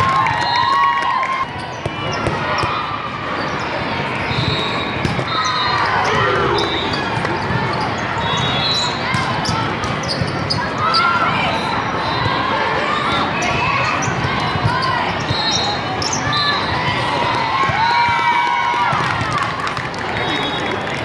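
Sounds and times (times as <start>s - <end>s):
din of many voices: 1.9s - 17.7s
shoe squeaks: 3.4s - 11.2s
people shouting calls: 5.3s - 7.1s.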